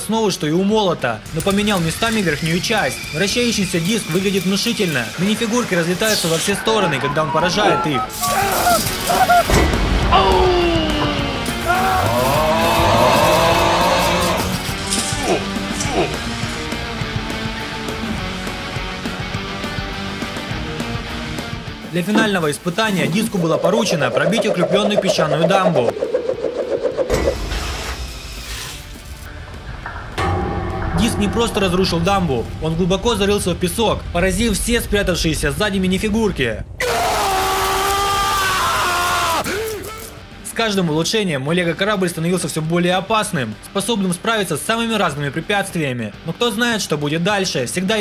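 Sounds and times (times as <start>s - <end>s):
background music: 0.0s - 48.0s
low rumble: 22.9s - 38.8s
low rumble with hiss: 31.0s - 37.0s.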